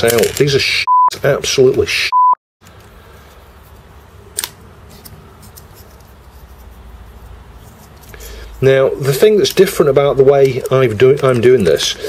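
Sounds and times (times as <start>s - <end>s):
censor bleep: 0.9s - 1.2s, 2.1s - 2.4s.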